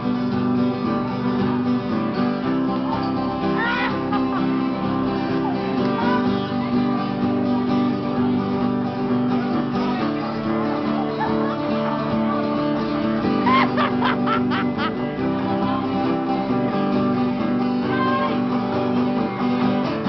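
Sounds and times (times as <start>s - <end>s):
strummed acoustic guitar jig: 0.0s - 20.0s.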